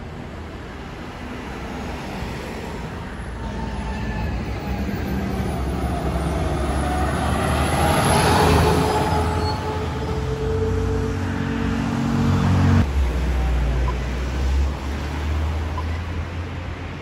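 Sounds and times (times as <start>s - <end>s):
fire engine diesel engine: 0.0s - 17.0s
truck tyres on road: 0.0s - 17.0s.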